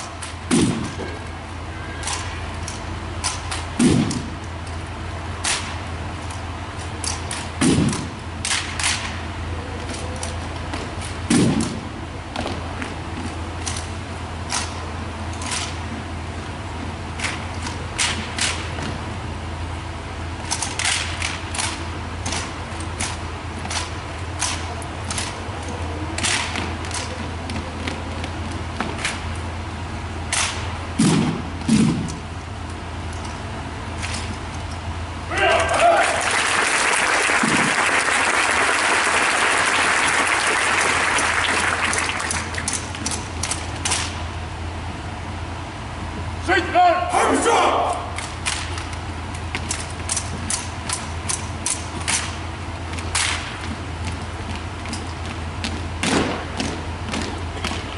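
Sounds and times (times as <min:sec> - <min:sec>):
heavy thuds: 0:31.0 - 0:32.2
person shouting: 0:35.3 - 0:36.3, 0:46.5 - 0:48.1
audience applauding and cheering: 0:35.7 - 0:42.7.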